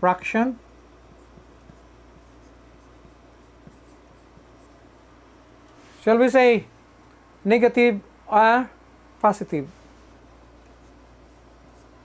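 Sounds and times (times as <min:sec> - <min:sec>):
marker writing on whiteboard: 0:00.7 - 0:05.0, 0:10.3 - 0:12.0.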